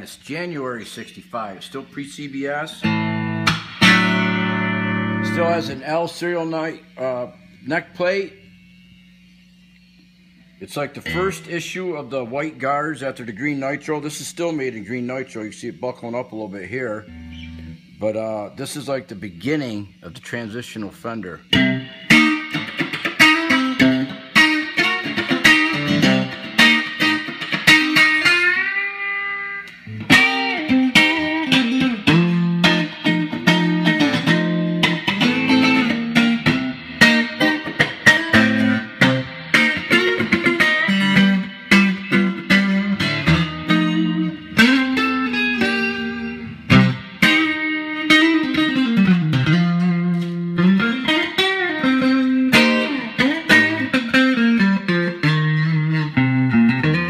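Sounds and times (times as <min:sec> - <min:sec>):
electric guitar through amplifier: 0:00.0 - 0:57.0.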